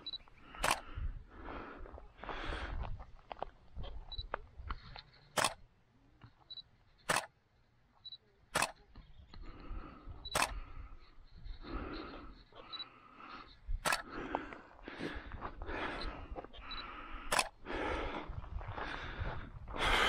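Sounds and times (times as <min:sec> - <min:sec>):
sharp clicks: 0:00.1 - 0:01.0, 0:04.2 - 0:07.4, 0:08.0 - 0:09.5, 0:10.2 - 0:10.8, 0:13.8 - 0:14.3, 0:16.6 - 0:17.6.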